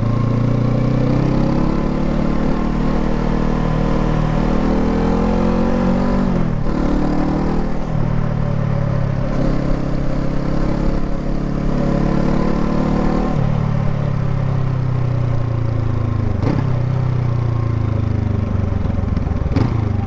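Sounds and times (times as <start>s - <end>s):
motorcycle engine accelerating: 0.0s - 20.0s.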